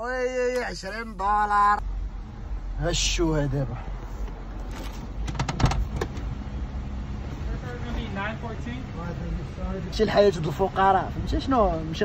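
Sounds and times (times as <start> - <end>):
car door latch clicks and knocks: 5.2 - 6.3
car door swinging open knock: 5.2 - 6.3.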